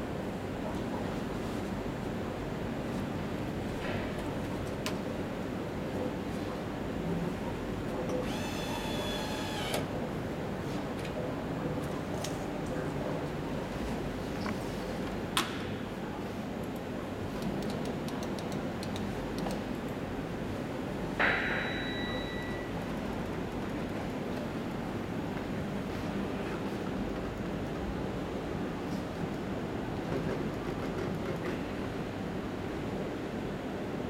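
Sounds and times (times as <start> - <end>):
high multi-tone motor whine: 8.2 - 9.8
high ding: 21.2 - 22.8.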